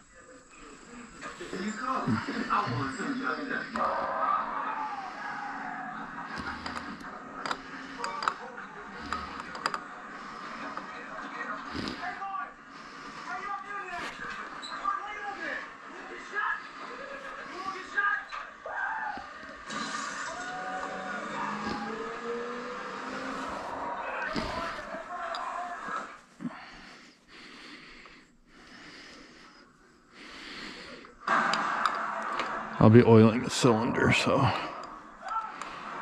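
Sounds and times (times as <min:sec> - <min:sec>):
indistinct background voices: 0:00.0 - 0:36.0.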